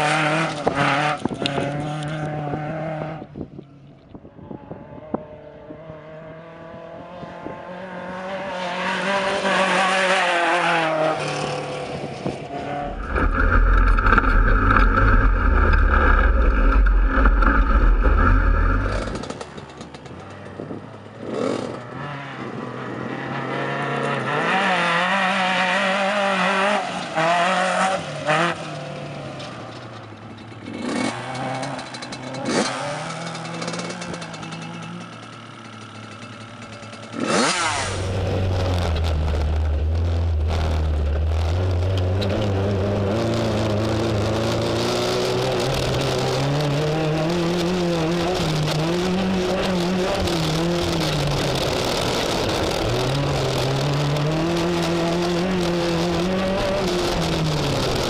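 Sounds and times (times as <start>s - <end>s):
truck engine revving: 12.5s - 19.7s.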